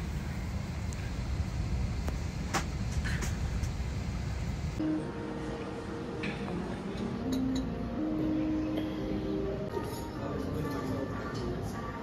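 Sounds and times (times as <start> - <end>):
airliner cabin engine drone: 0.0 - 6.9.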